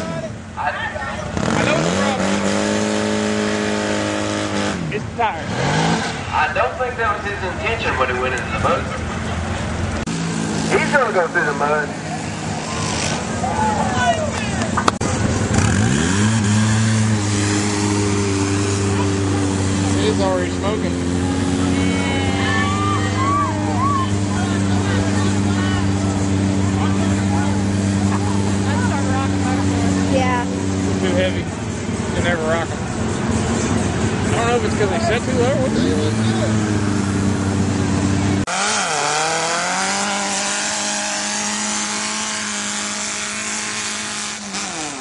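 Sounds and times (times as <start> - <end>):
engine revving: 0.0 - 45.0.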